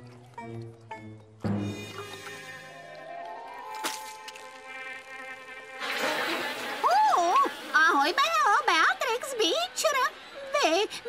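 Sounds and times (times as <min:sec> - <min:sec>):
cartoon bees buzzing: 0:04.1 - 0:11.0.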